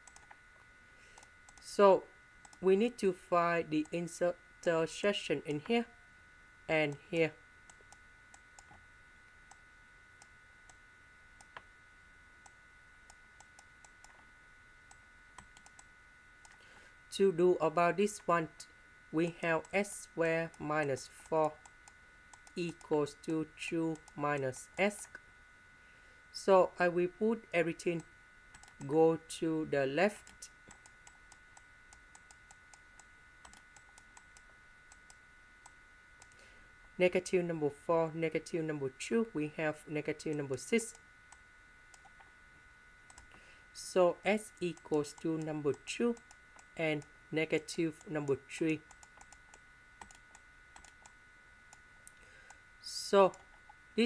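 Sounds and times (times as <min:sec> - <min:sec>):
computer mouse clicks: 0:00.0 - 0:00.4, 0:02.4 - 0:02.6, 0:07.7 - 0:08.8, 0:14.9 - 0:16.6, 0:21.4 - 0:22.9, 0:28.5 - 0:28.9, 0:30.2 - 0:36.4, 0:40.3 - 0:42.3, 0:43.1 - 0:43.4, 0:46.1 - 0:46.7, 0:48.7 - 0:52.6
faint high-pitched whine: 0:00.0 - 0:54.0.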